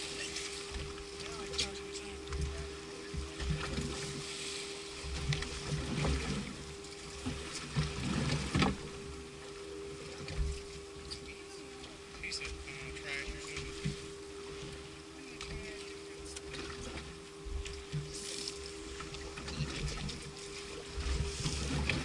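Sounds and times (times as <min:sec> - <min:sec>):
steady motor hum: 0:00.0 - 0:22.0
water lapping at hull: 0:00.0 - 0:22.0.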